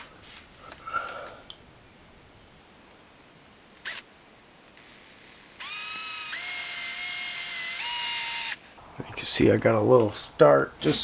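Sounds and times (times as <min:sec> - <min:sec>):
cordless drill whining: 0:03.8 - 0:04.1, 0:04.8 - 0:08.6.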